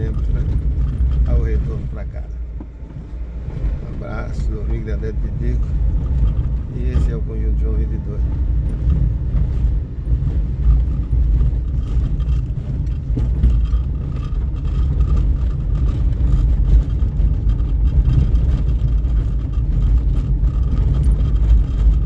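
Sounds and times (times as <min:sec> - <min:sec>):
small knocks and rattles: 0:00.0 - 0:22.0
tyres rumbling on cobblestones: 0:00.0 - 0:22.0.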